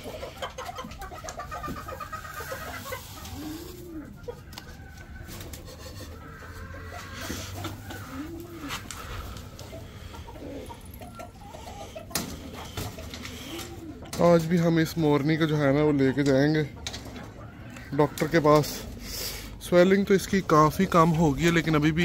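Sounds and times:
hens clucking: 0.0 - 22.0
pigeons cooing: 0.0 - 22.0.

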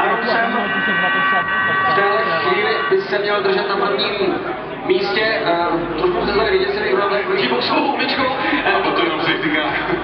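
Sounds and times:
race commentary over loudspeaker: 0.0 - 10.0
steady high tones: 0.0 - 10.0.

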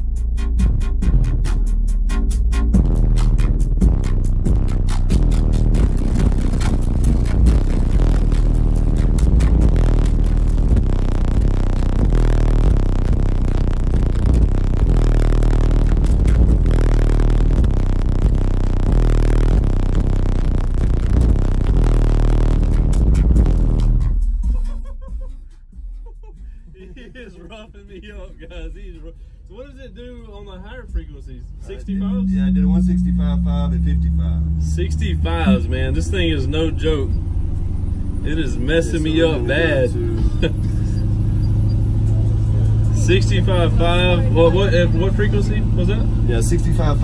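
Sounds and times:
bass-heavy electronic music: 0.0 - 47.0.

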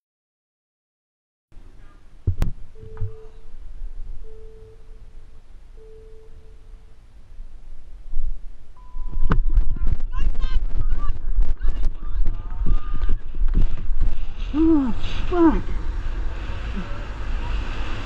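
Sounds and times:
short electronic beeps: 2.8 - 3.5, 4.2 - 5.0, 5.8 - 6.8, 8.8 - 9.3
wind buffeting microphone: 7.1 - 18.0
board wheels rumbling on asphalt: 7.4 - 18.0.

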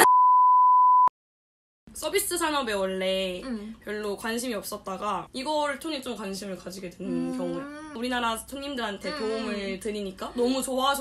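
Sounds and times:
censor bleep tone: 0.0 - 1.1.

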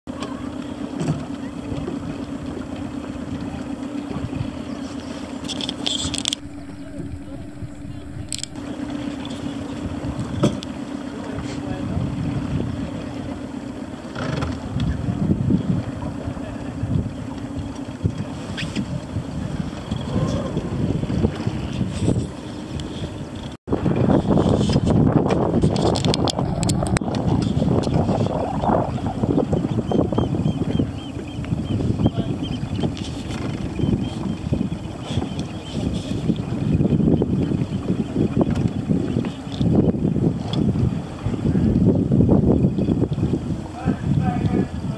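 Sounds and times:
wind rumbling on microphone: 1.2 - 13.5, 14.2 - 44.9
steady low hum: 6.1 - 11.0, 25.0 - 31.3
indistinct voices: 6.3 - 8.6, 25.8 - 29.2.

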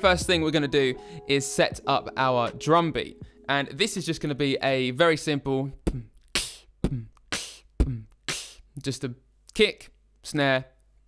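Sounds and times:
beatboxed kick and snare: 5.8 - 8.7.

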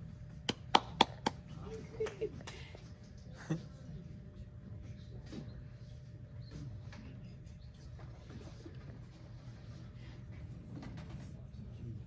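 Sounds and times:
low murmur in a hall: 0.0 - 12.0.

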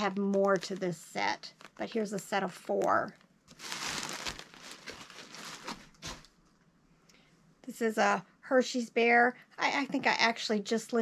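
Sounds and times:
plastic bag crinkling: 0.0 - 2.1, 2.8 - 6.4.

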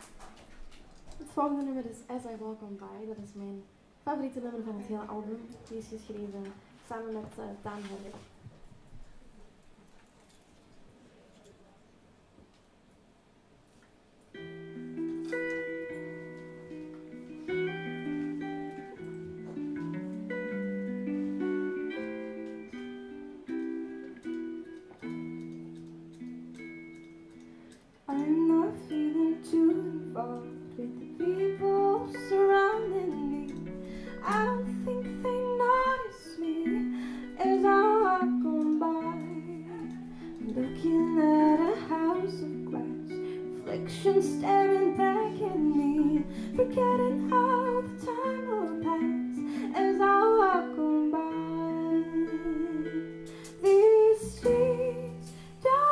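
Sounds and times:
clean guitar picked chords: 14.3 - 55.9
woman singing: 28.1 - 55.9.

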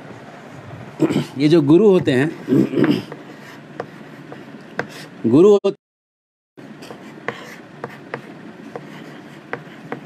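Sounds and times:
chalk scratching on chalkboard: 2.3 - 5.2, 6.8 - 10.0
chalk tapping on board: 2.8 - 5.1, 6.9 - 10.0.

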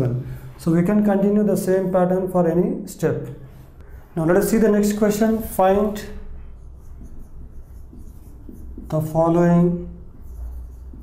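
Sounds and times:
marker writing on whiteboard: 3.8 - 11.0.

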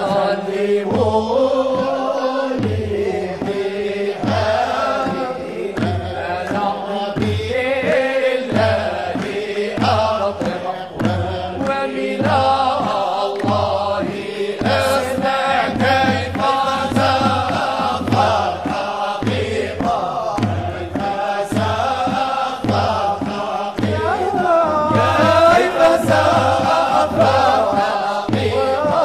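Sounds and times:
steady rhythmic pulse: 0.0 - 29.0
vocal ensemble chanting: 0.0 - 29.0.

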